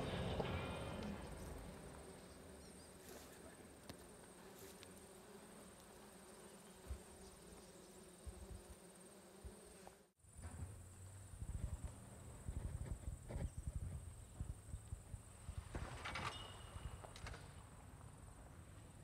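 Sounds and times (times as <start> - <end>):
low hum: 0.0 - 2.9.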